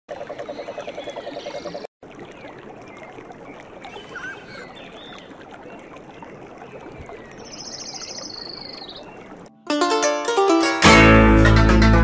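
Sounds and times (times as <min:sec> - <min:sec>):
faint high whistling calls: 0:03.9 - 0:05.2.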